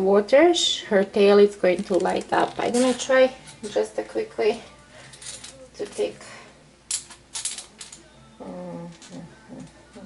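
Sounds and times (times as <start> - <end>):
small hard objects clicking and rattling: 1.7 - 3.2, 5.1 - 5.6, 6.9 - 8.1.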